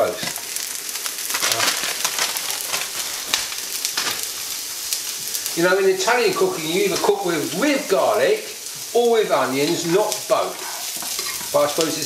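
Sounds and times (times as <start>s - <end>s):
garlic and onions sizzling in oil: 0.0s - 12.0s.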